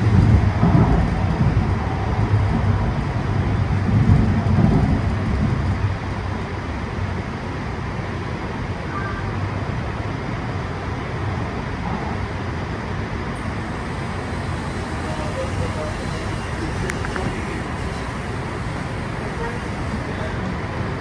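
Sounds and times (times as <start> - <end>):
train rumble inside car: 0.0 - 21.0.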